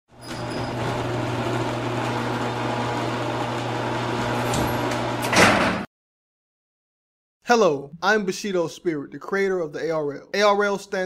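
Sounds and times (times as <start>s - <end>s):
metal roll-up shutter rumbling: 0.2s - 2.6s.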